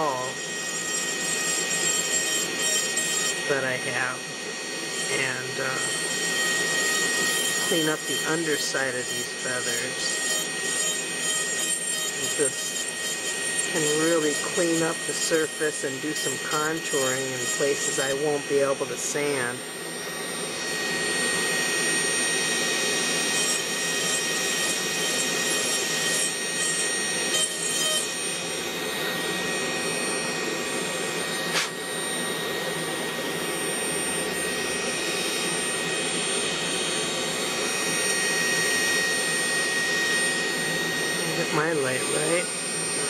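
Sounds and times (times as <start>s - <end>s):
carving handpiece whine grinding wood: 0.0s - 43.0s
dust collector running: 0.0s - 43.0s
sharp click: 31.5s - 31.8s.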